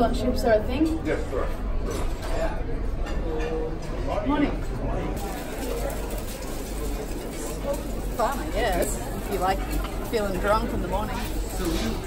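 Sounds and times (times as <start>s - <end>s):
murmur of diners' voices: 0.0s - 12.0s.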